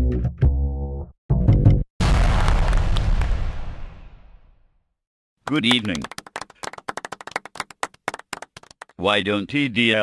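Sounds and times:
people clapping: 5.4s - 9.0s.

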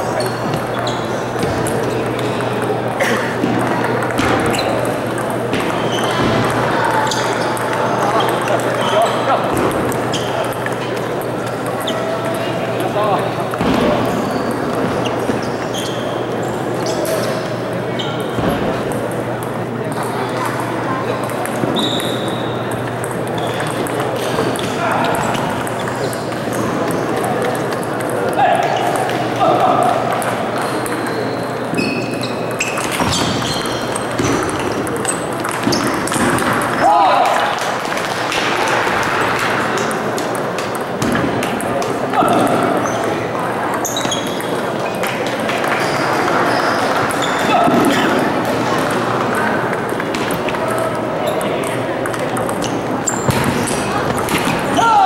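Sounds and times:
voices chattering: 0.0s - 55.0s
table tennis ball clicking: 48.8s - 54.3s.

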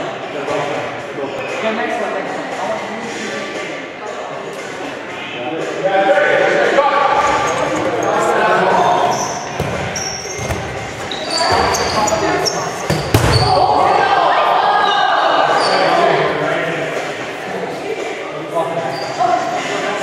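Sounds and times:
players shouting: 6.1s - 16.3s
sneakers squeaking on gym floor: 7.2s - 13.9s.

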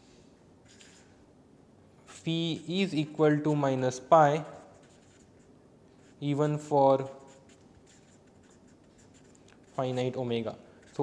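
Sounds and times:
marker scratching on paper: 0.6s - 1.2s, 2.1s - 11.0s.

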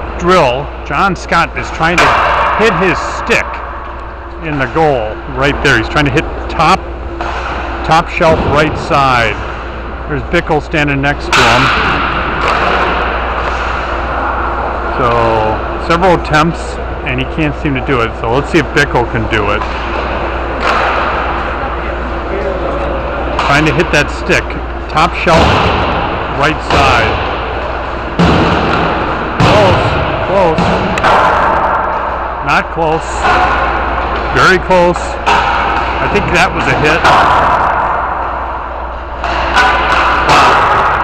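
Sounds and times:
ice rink noise: 0.0s - 41.0s
steady low hum: 0.0s - 41.0s
hockey stick hitting puck: 1.9s - 3.9s, 7.2s - 9.6s, 11.3s - 14.5s, 19.6s - 21.5s, 25.2s - 27.6s, 28.2s - 32.3s, 33.2s - 41.0s.

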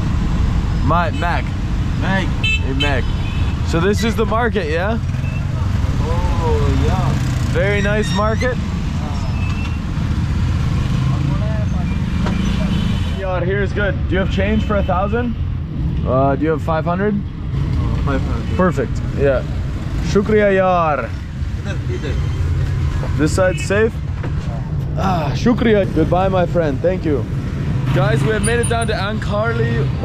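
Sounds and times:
faint street voices: 0.7s - 30.0s.

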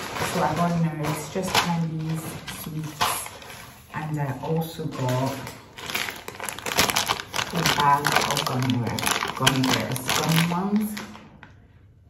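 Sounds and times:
woman's voice: 0.0s - 5.6s, 7.5s - 11.2s
packaging crinkling and rustling: 0.0s - 11.6s.

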